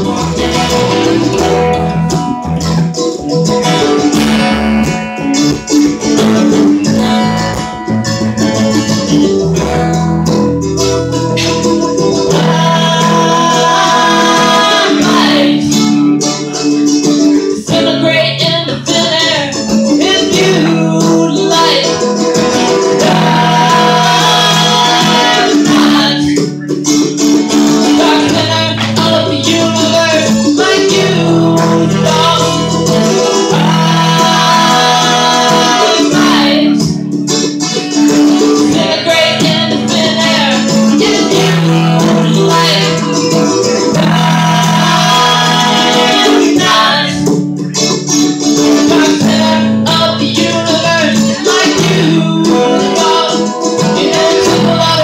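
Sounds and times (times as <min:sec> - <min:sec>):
acoustic string band playing: 0:00.0 - 0:55.0.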